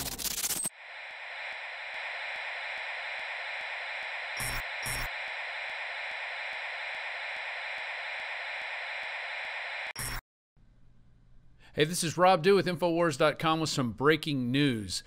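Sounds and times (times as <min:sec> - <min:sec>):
electronic static hiss: 0:00.0 - 0:10.2.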